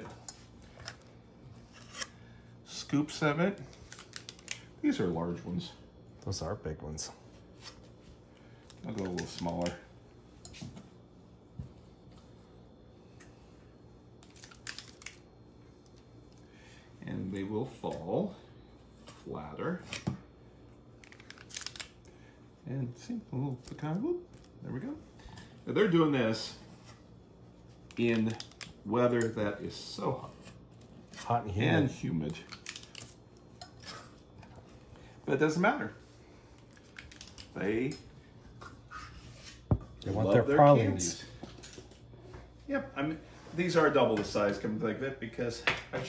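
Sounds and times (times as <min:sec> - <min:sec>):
low room hum: 0:00.0 - 0:46.0.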